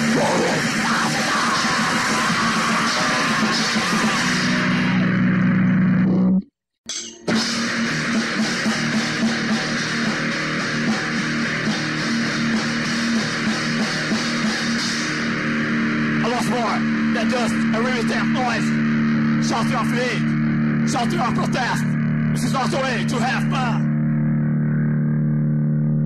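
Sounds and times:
drums: 0.0s - 6.3s, 7.2s - 22.5s
hardcore punk music: 0.0s - 24.5s
distorted guitars: 0.0s - 26.0s.

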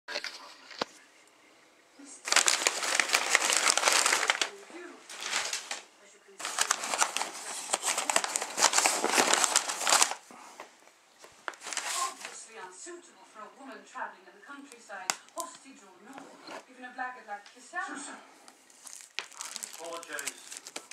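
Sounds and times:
plastic wrap crinkling: 2.2s - 10.3s, 11.2s - 12.4s, 18.6s - 20.9s.

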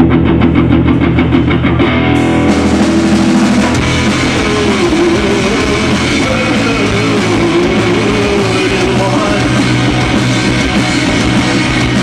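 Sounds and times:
bass guitar: 0.0s - 12.0s
drum kit: 0.0s - 12.0s
electric guitar: 0.0s - 12.0s.

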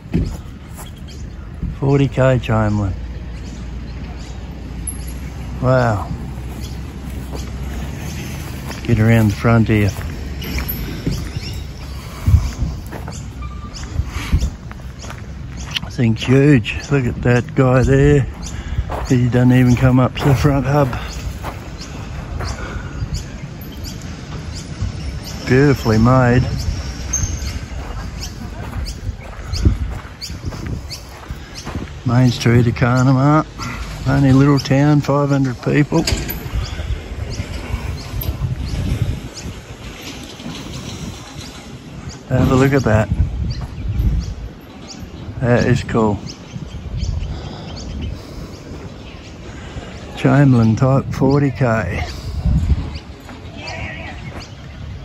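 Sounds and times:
footsteps on gravel: 0.0s - 1.4s, 4.9s - 24.5s, 25.3s - 43.9s
wind buffeting microphone: 0.0s - 55.0s
high bird chirps: 2.9s - 15.9s, 18.3s - 33.8s.

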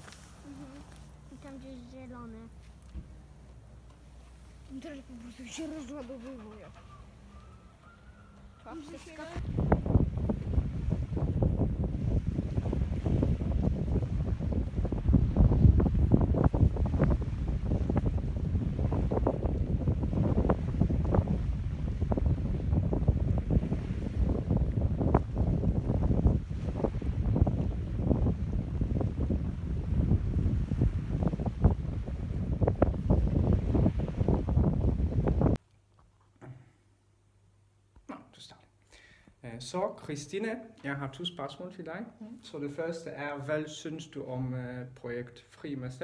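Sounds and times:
wind buffeting microphone: 4.7s - 35.6s.

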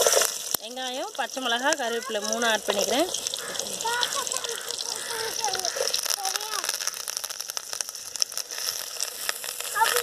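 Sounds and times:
food sizzling in hot oil: 0.0s - 10.0s
oil crackling pops: 0.0s - 10.0s.

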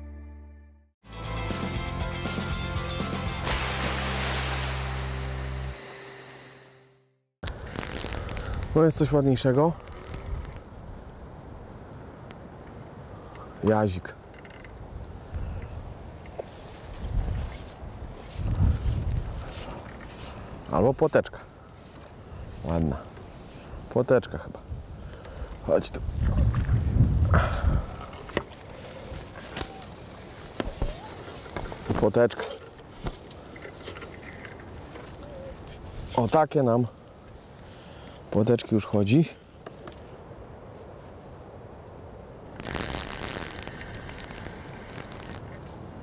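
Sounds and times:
water splashing and sloshing: 3.5s - 6.3s, 26.0s - 27.0s
fishing reel whirring: 7.6s - 8.6s, 9.8s - 10.7s, 42.6s - 45.5s.

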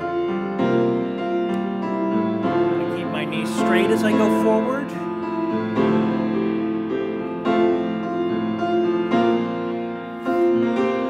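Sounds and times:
slow grand piano chords: 0.0s - 11.0s.

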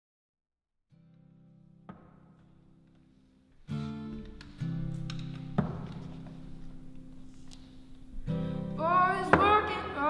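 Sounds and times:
acoustic guitar chords: 0.9s - 10.0s.

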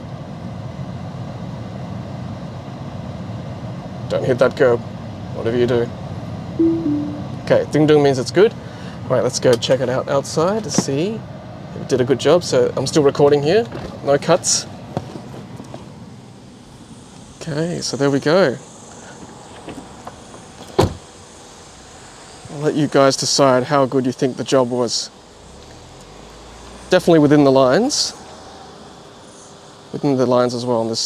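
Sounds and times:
short click: 6.6s - 7.4s.

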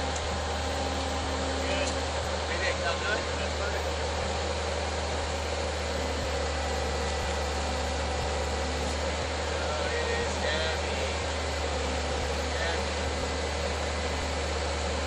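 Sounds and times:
diesel engine droning: 0.0s - 15.0s.

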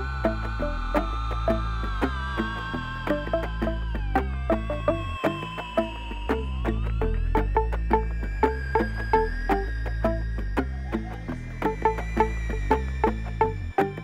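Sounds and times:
clicking woody percussion beat: 0.0s - 14.0s
electric guitar: 0.0s - 14.0s
pulsing bass: 0.0s - 14.0s
synth tone gliding upward: 0.0s - 14.0s
synthesizer: 0.0s - 14.0s.

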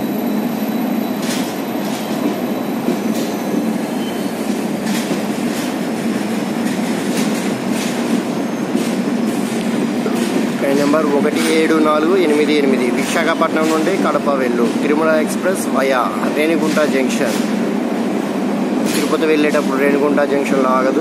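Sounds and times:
train wheels rumbling on rail: 0.0s - 21.0s
wheel clacks over rail joints: 4.8s - 15.2s, 16.0s - 17.7s, 18.8s - 20.2s.

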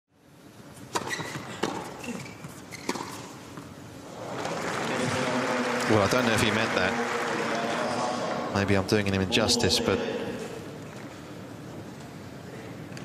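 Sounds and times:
crowd cheering and applauding: 4.0s - 8.7s.

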